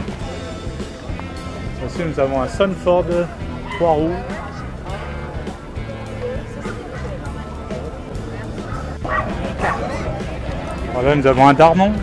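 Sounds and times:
background music: 0:00.0 - 0:12.0
dog barking: 0:08.7 - 0:10.1.

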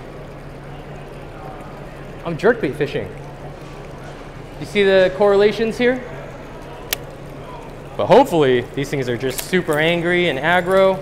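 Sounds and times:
steady low hum: 0:00.0 - 0:11.0
sharp click: 0:06.9 - 0:07.1.

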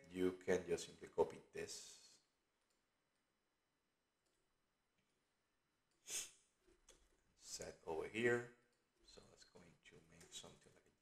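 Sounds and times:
man speaking: 0:00.0 - 0:02.3, 0:07.4 - 0:11.0.

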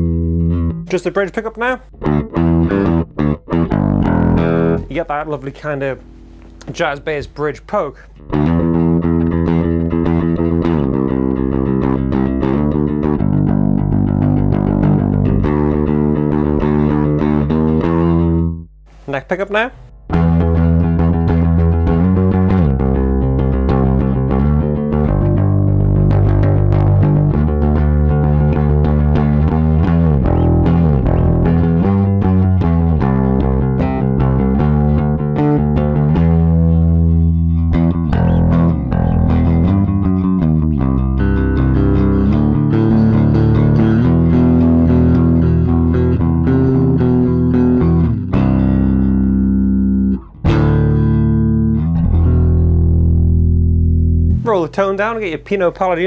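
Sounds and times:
clean bass guitar notes: 0:00.0 - 0:55.7.

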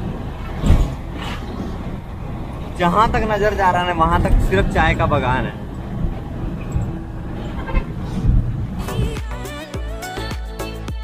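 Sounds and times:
truck engine and road noise: 0:00.0 - 0:11.0
music: 0:08.8 - 0:11.0.

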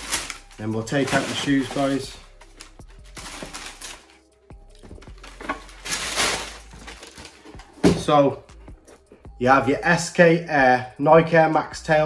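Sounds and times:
tissue paper rustling: 0:00.0 - 0:04.2, 0:04.8 - 0:07.8
soft background music: 0:00.0 - 0:12.0.

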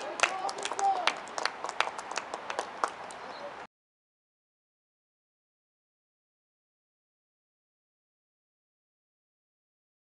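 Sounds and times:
people clapping: 0:00.0 - 0:03.3.

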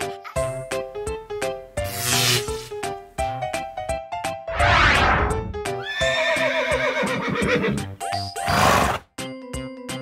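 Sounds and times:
cheerful background music: 0:00.0 - 0:10.0
swooshing effect: 0:04.5 - 0:05.6
horse whinnying: 0:05.8 - 0:07.8.

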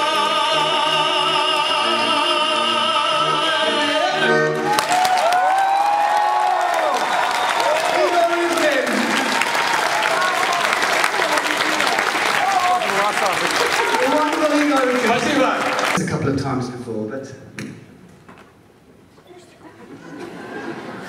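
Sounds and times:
two men singing: 0:00.0 - 0:04.6
accordion chord: 0:00.0 - 0:04.7
audience cheering: 0:04.5 - 0:16.0
audience applause: 0:04.6 - 0:16.2.

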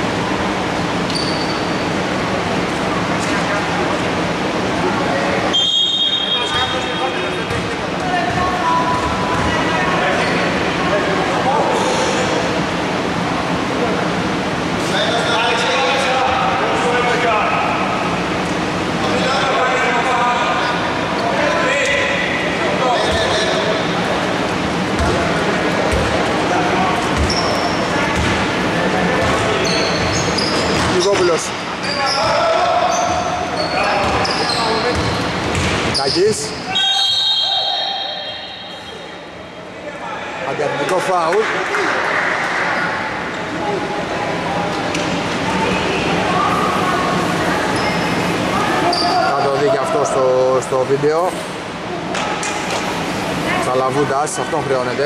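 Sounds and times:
echoing voices: 0:06.2 - 0:55.0
basketball bouncing on wooden floor: 0:34.9 - 0:35.8.

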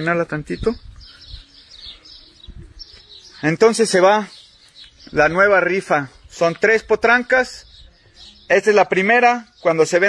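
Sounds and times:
small birds chirping: 0:00.0 - 0:10.0
soft low thumps: 0:00.6 - 0:03.3.

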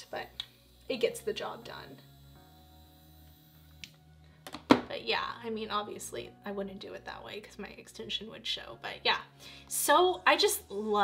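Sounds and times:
faint music with held notes: 0:00.0 - 0:11.0.

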